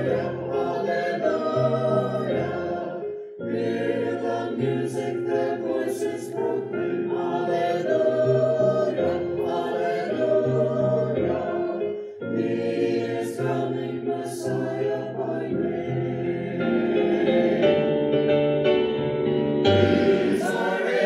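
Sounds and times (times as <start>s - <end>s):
church choir singing in harmony: 0.0s - 21.0s.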